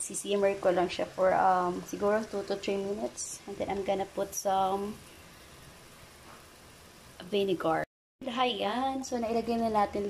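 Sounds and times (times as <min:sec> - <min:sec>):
water heating hiss: 0:00.0 - 0:10.0.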